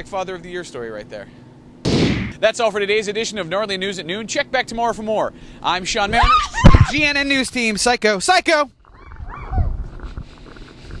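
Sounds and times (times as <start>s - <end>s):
roaring cry: 8.9s - 9.7s.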